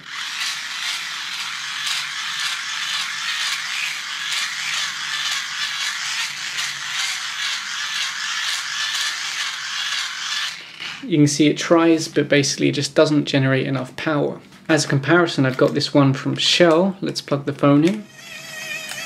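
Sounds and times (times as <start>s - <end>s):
hand-crank dynamo gears whirring: 0.0s - 11.1s, 18.1s - 19.0s.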